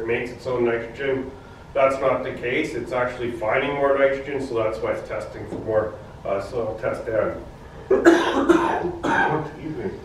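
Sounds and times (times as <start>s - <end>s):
man coughing: 7.9s - 9.9s.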